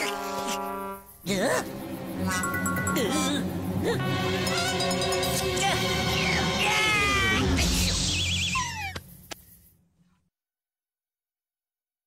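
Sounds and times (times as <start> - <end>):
background music: 0.0 - 7.9.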